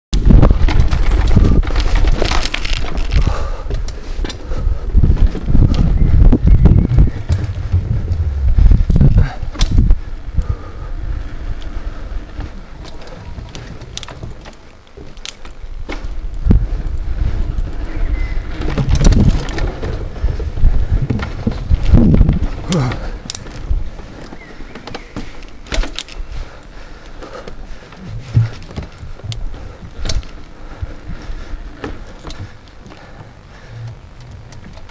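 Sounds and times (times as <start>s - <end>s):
wind buffeting microphone: 0.1s - 14.5s, 15.5s - 24.8s
bike rattling and knocking: 0.2s - 34.9s.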